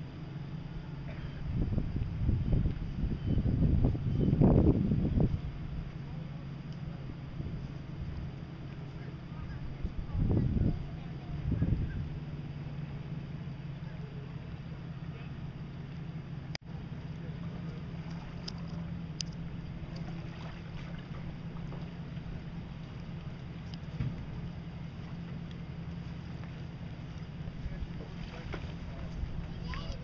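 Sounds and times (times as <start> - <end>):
outboard motors droning: 0.0 - 30.0.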